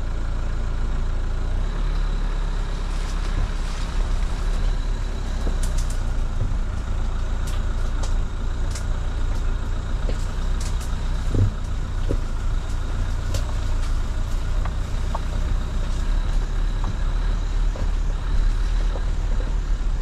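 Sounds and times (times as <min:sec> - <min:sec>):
car engine low rumble: 0:00.0 - 0:20.0.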